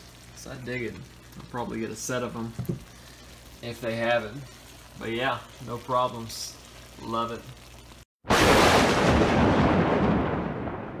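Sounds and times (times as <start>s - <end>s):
rumbling boom sound effect: 8.3s - 11.0s.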